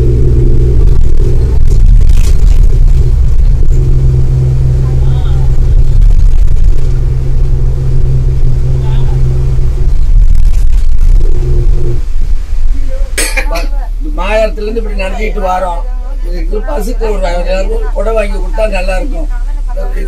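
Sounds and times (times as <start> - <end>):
bus diesel engine drone: 0.0 - 20.0.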